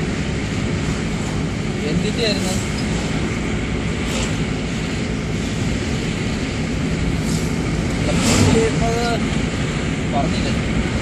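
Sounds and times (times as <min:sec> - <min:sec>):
passing traffic rush: 0:00.0 - 0:11.0
road and engine noise in car: 0:00.0 - 0:11.0.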